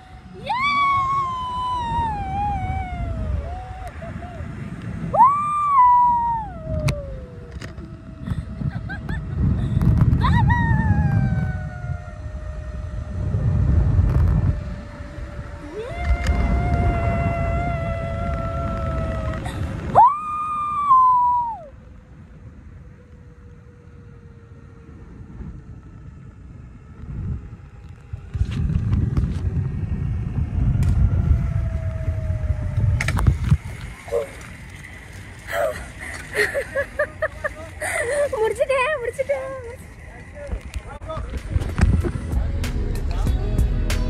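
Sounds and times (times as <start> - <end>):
wind rumbling on microphone: 0.0 - 44.0
zipline trolley whistling whine: 0.0 - 44.0.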